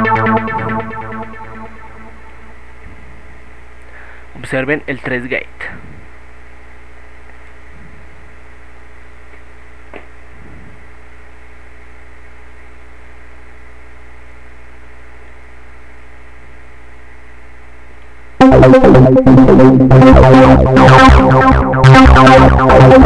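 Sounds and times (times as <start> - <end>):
stuttering synthesizer note: 0.0 - 2.8, 18.4 - 23.0
electrical hum: 0.0 - 23.0.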